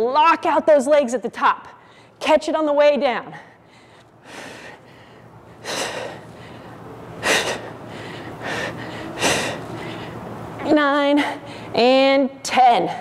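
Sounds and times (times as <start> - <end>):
person breathing hard: 3.4 - 10.2.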